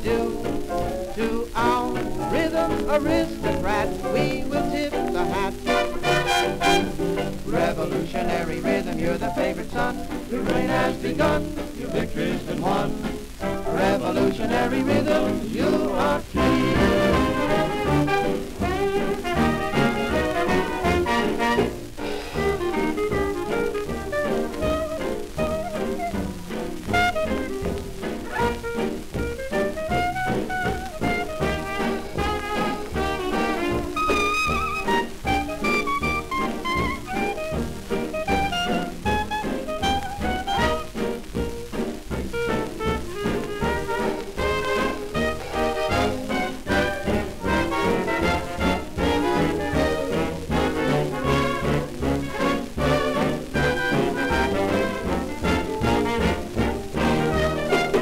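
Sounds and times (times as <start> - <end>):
dance orchestra with brass and reeds: 0.0 - 58.0.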